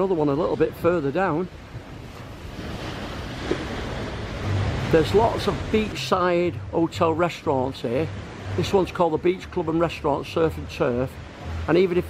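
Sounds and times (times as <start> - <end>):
sea surf: 0.0 - 12.0
wind: 0.0 - 12.0.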